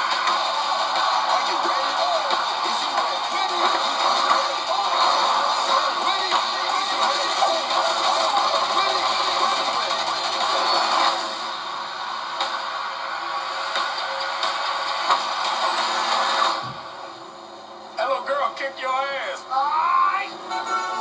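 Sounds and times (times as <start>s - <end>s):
film trailer music and effects: 0.0s - 17.3s.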